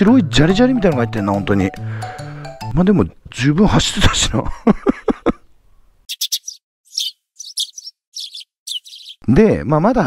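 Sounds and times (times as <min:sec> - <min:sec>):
bird chirping: 0:05.6 - 0:09.2.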